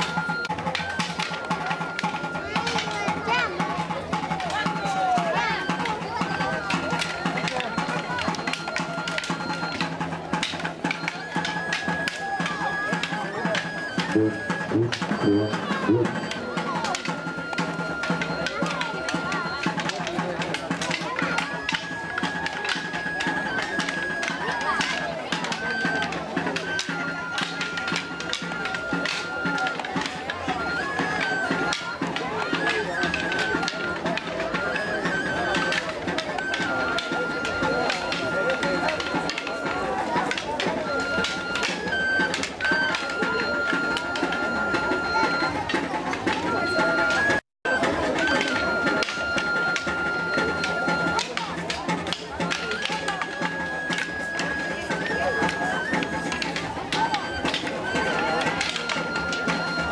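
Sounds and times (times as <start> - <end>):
crowd chatter: 0.0 - 59.9
flute playing dance tune: 0.0 - 59.9.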